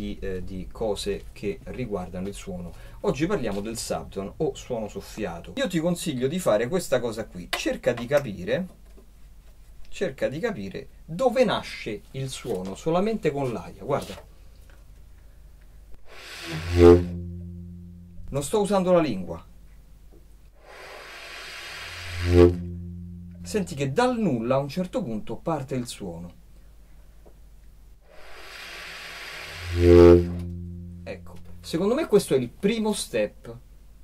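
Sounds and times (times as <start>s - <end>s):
low saxophone note: 16.4s - 19.5s, 21.8s - 24.2s, 29.4s - 32.3s.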